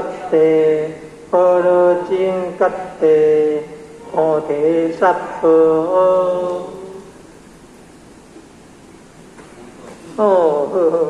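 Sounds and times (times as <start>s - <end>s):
person chanting: 0.0s - 7.2s, 10.0s - 11.0s
low room noise: 0.0s - 11.0s.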